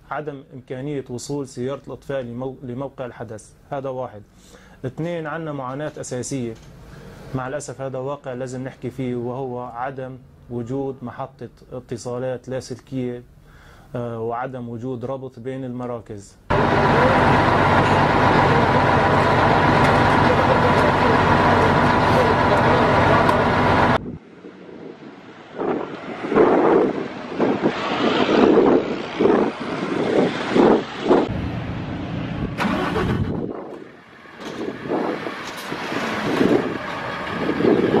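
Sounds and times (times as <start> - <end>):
heavy truck engine running: 16.5 - 24.0, 30.4 - 38.0
men talking and calling: 16.5 - 24.0
vehicle noise: 16.5 - 38.0.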